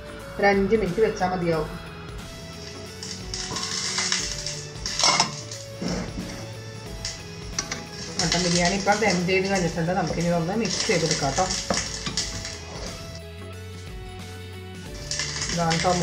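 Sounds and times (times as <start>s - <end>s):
background music: 0.0s - 16.0s
metal lid clinking on pot: 4.9s - 5.5s.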